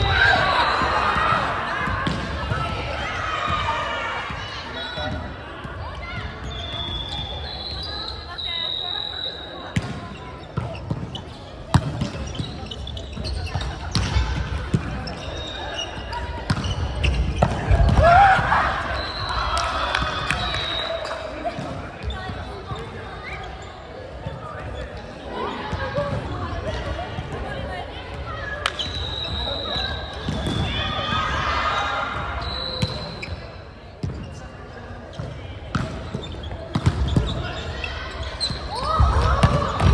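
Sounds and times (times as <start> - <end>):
shoes squeaking on wooden court: 9.7 - 18.0, 21.0 - 26.2, 32.4 - 39.9
volleyball slaps: 38.9 - 39.9.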